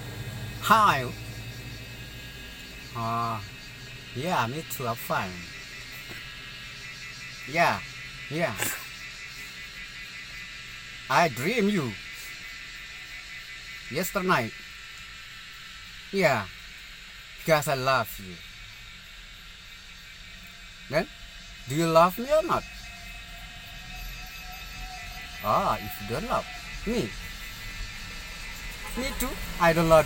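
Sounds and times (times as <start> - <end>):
faint thin steady tone: 0.0 - 30.0
vehicle cabin hum: 0.0 - 30.0.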